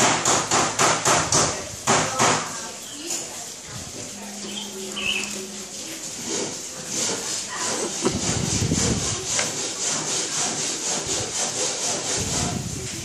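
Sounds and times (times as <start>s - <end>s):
rhythmic rasping scrape: 0.2s - 13.0s.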